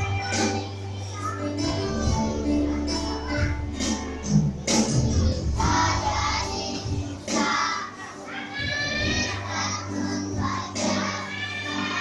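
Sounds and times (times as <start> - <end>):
backing music: 0.0 - 12.0
children singing in unison: 0.0 - 12.0.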